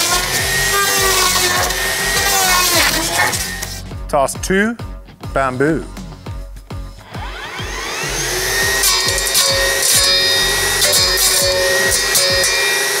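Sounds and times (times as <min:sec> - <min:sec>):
brush cutter whining: 0:00.0 - 0:03.8, 0:07.1 - 0:13.0
background music with beat: 0:00.0 - 0:13.0.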